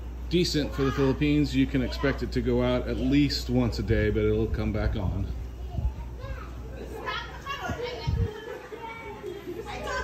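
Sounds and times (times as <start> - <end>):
children chattering and calling: 0.3 - 10.0.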